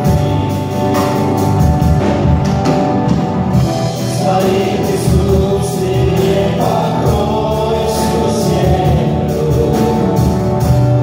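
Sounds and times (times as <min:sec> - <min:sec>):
group singing: 0:00.0 - 0:02.2, 0:03.5 - 0:11.0
acoustic and electric guitars: 0:00.0 - 0:11.0
drum kit with cymbals: 0:00.0 - 0:11.0.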